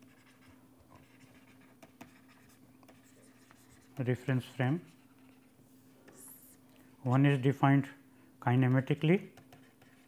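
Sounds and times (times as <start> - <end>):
stylus scratching on pen tablet: 0.0 - 5.5, 9.4 - 10.0
low steady hum: 0.0 - 10.0.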